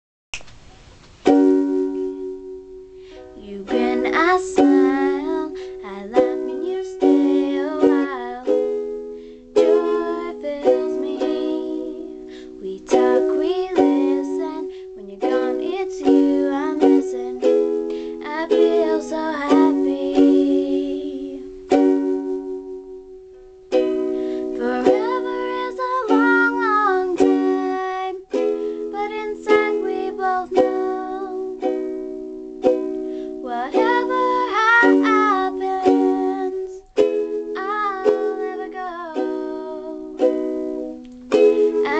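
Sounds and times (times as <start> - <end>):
ukulele strumming chords: 1.0 - 41.9
girl singing: 1.4 - 23.0, 23.7 - 41.9.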